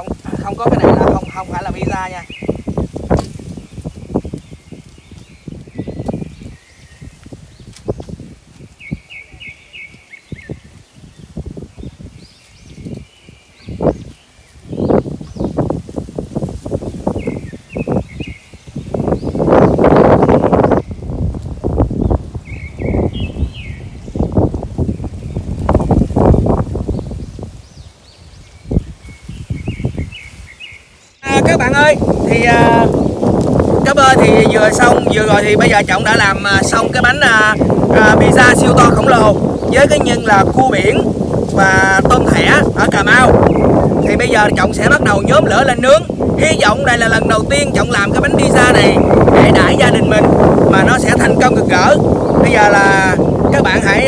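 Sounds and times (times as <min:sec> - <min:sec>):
wind rumbling on microphone: 0:00.0 - 0:54.0.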